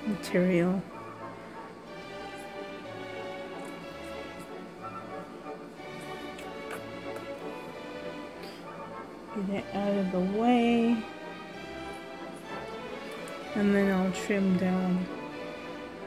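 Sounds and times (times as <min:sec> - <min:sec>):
background music with held notes: 0:00.0 - 0:16.0.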